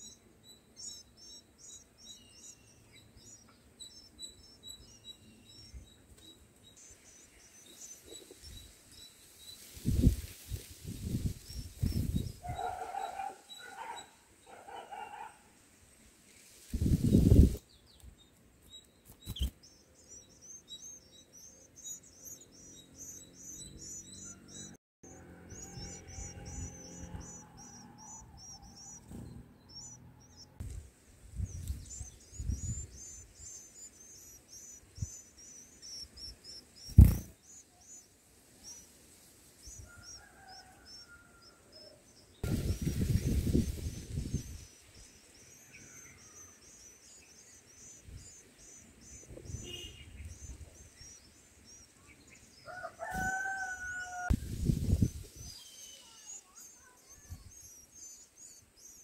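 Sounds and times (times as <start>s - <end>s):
high thin bird chirps: 18.8s - 24.8s, 31.3s - 38.9s, 42.4s - 59.0s.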